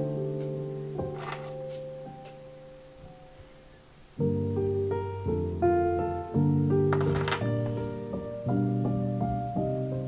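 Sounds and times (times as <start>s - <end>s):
soft piano music: 0.0s - 10.0s.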